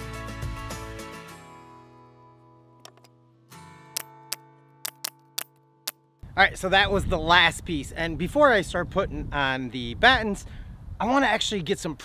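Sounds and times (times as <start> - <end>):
guitar music: 1.3 - 6.1.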